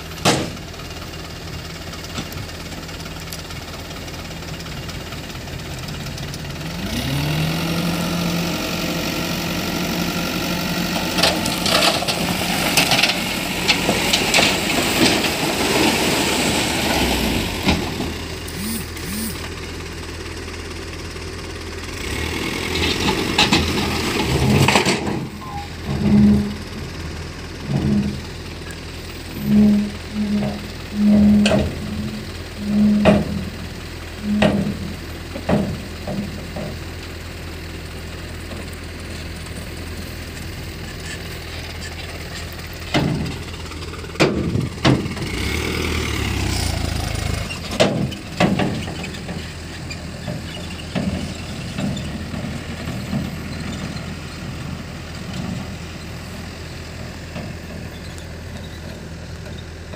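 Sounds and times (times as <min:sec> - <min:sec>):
diesel engine idling: 0:00.0 - 0:59.9
soil and rocks sliding: 0:06.8 - 0:19.5, 0:22.0 - 0:59.9.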